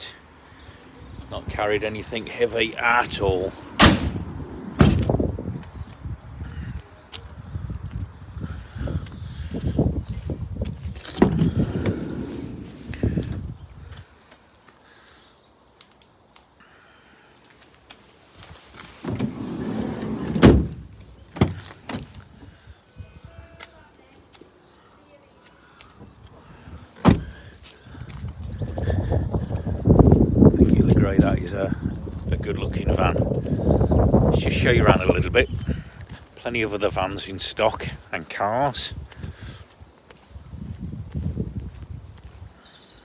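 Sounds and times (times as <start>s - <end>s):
door handling and rumbling: 3.8s - 5.2s, 11.0s - 13.1s, 19.0s - 22.2s, 27.0s - 27.3s
van door slamming: 3.8s - 5.2s, 11.1s - 12.6s, 19.0s - 22.1s, 27.0s - 27.4s
sliding door noise: 11.2s - 12.9s, 19.0s - 20.8s.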